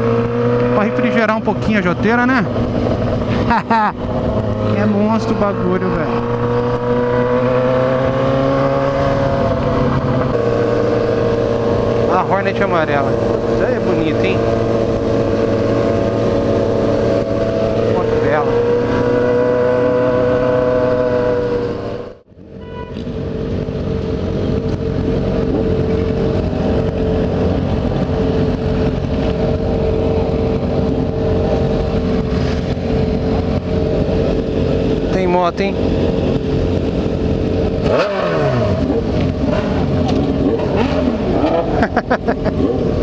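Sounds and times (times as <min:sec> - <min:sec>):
motorcycle engine running: 0:00.0 - 0:43.0.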